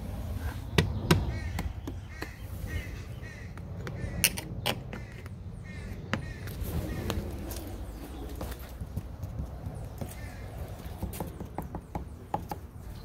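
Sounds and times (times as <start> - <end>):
bird calling: 0.5 - 13.0
tool tapping on wall: 11.0 - 12.6.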